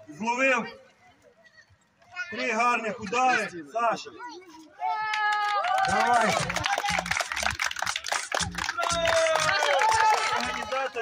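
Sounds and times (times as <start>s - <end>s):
people clapping: 5.0s - 11.0s
music: 5.9s - 10.8s.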